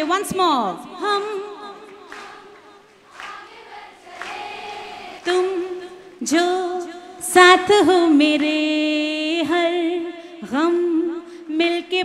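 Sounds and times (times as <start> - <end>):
women and girls singing together: 0.5 - 10.9.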